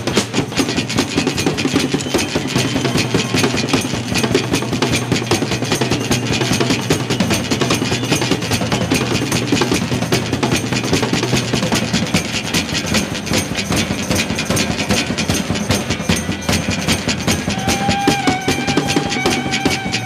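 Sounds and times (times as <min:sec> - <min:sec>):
fast drumming on drum kit: 0:00.0 - 0:20.0.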